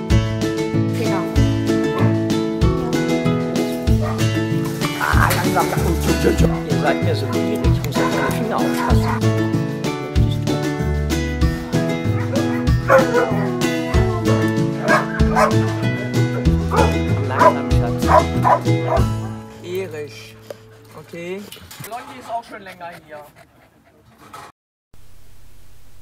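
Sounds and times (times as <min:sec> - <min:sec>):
background music with steady beat: 0:00.0 - 0:19.7
dogs barking and yipping: 0:01.7 - 0:09.6, 0:11.5 - 0:19.5.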